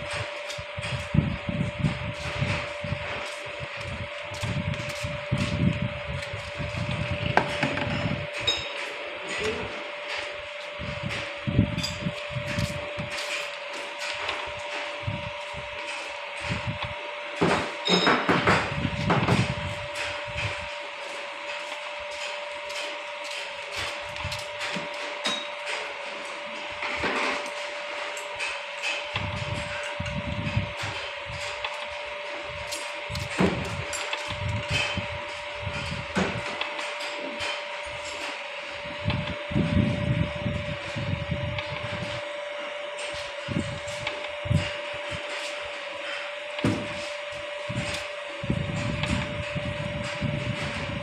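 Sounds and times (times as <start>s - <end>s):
pump drive high-pitched hum: 0.0s - 51.0s.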